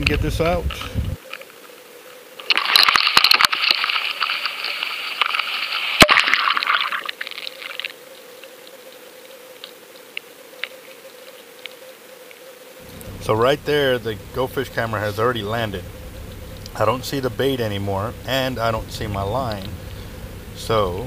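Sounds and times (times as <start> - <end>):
small ticks: 0.0 - 6.0, 6.8 - 13.2, 15.8 - 16.8
water rushing and crackling: 2.4 - 8.0
faint steady hum: 7.1 - 21.0.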